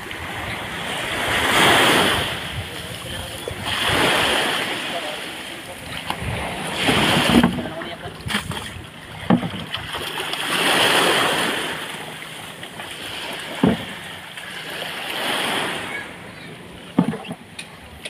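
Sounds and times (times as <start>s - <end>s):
sea water washing and splashing: 0.0s - 18.0s
plastic tub knocking: 13.6s - 13.9s.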